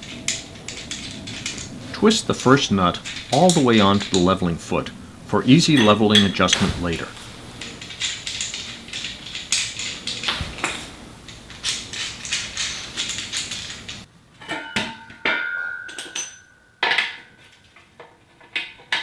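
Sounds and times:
metal nut clicking and rattling: 0.0 - 14.6
metal clinks and knocks: 0.0 - 19.0.

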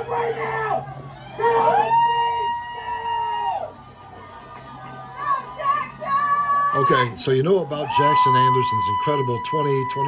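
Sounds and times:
spectator shouting: 0.0 - 3.8, 4.9 - 10.0.

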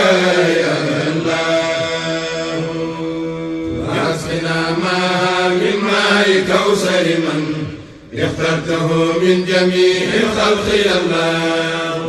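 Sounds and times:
voices chanting a devotional poem: 0.0 - 12.0.

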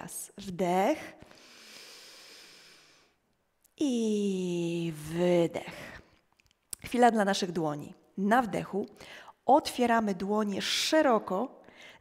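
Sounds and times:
woman inhaling: 1.2 - 3.2.

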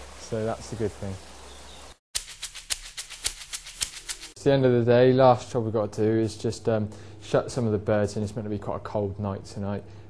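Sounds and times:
faint steady hiss: 0.0 - 2.0
shaker-like ticks: 2.2 - 4.4
low steady hum: 4.4 - 10.0.

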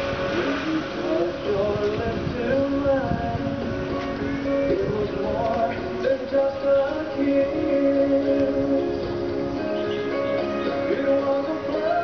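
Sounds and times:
slow pop ballad: 0.0 - 12.0.

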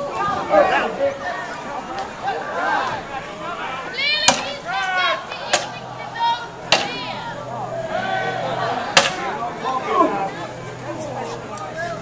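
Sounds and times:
people shouting: 2.2 - 10.4.

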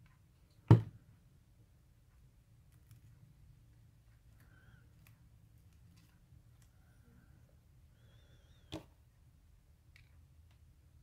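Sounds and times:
faint low hum: 0.0 - 11.0
faint wavering squeak: 7.9 - 8.7.

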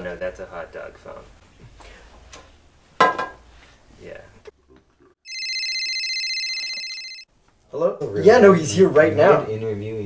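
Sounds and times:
telephone ringing electronic trill: 5.3 - 7.3.

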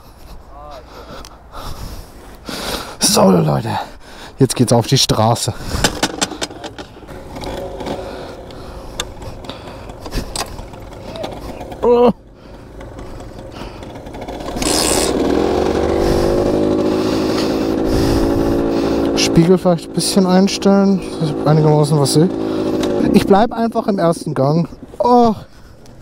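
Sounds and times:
kick-start knocks and scrapes: 5.8 - 8.2
two-stroke engine revving and idling: 5.8 - 25.4.

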